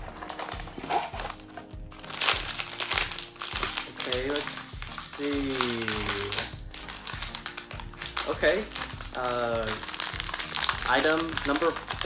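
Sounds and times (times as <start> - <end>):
background music with beat: 0.0 - 12.0
plastic packet crinkling: 0.0 - 12.0.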